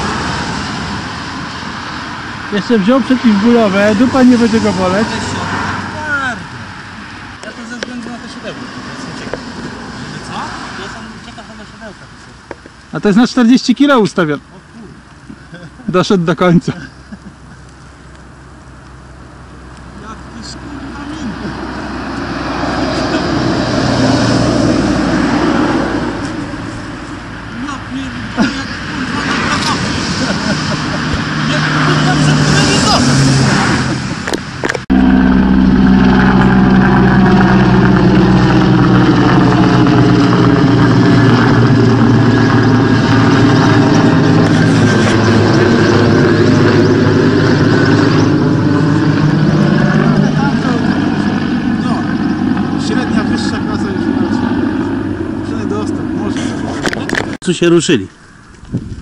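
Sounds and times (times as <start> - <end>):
helicopter flying overhead: 0.0 - 58.4.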